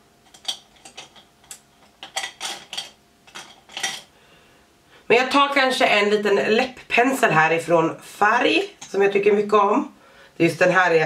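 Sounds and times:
makeup brushes clicking and clinking: 0.3s - 4.1s.

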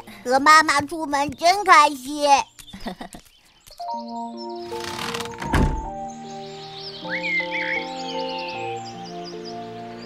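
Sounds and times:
door shutting thud: 4.8s - 6.0s.

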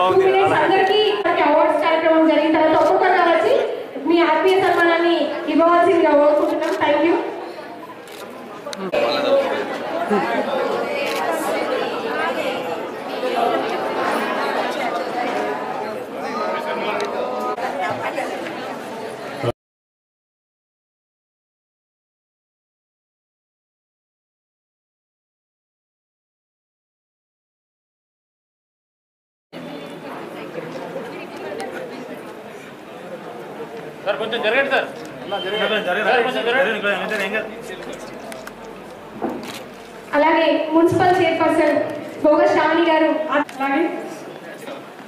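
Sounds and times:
people talking at once: 0.0s - 19.5s
crowd chatter: 0.0s - 19.6s, 29.6s - 45.0s.

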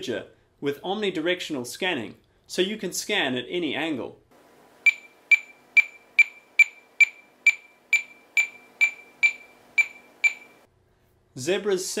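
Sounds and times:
short high-pitched scanner beeps: 4.8s - 10.7s.

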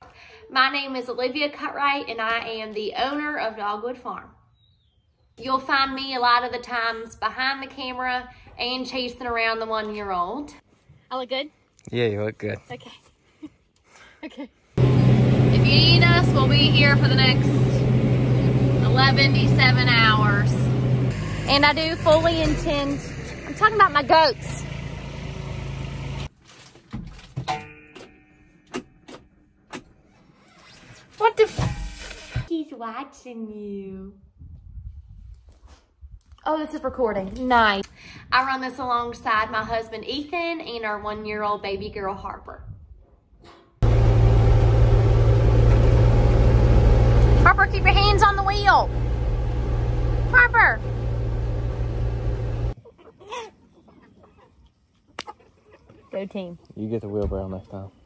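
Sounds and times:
low mechanical hum: 14.8s - 26.3s, 43.8s - 52.8s
vehicle engine running: 14.8s - 26.3s, 43.8s - 52.8s
chicken clucking: 52.8s - 56.2s.

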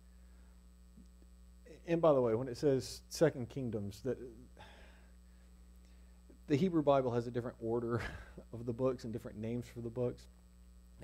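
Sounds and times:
electrical mains hum: 0.0s - 11.0s
man speaking: 1.7s - 4.6s, 6.4s - 10.3s.

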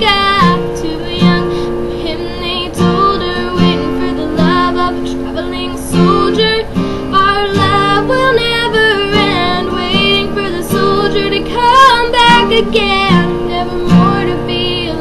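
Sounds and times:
acoustic guitar: 0.0s - 15.0s
woman singing country ballad: 0.0s - 15.0s.

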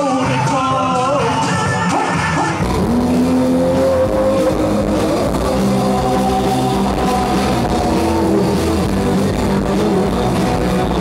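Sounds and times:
live band with vocals: 0.0s - 11.0s
loud rock band: 0.0s - 11.0s
electric guitar sliding notes: 1.7s - 11.0s.

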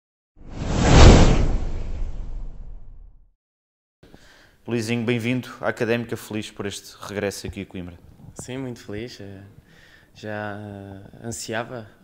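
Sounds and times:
deep rumble: 0.4s - 3.1s
whoosh sound effect: 0.4s - 3.1s.

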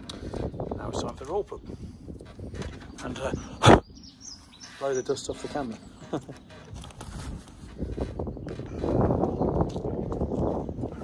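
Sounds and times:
faint bird chirps: 2.8s - 6.6s.

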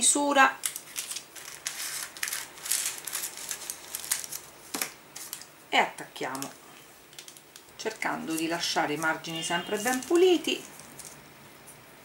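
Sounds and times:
baking paper rustling: 0.3s - 11.2s.

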